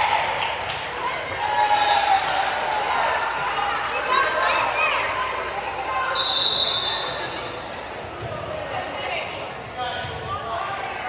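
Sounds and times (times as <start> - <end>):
voices echoing in a gym: 0.0 - 11.0
referee's whistle blast: 6.1 - 7.4.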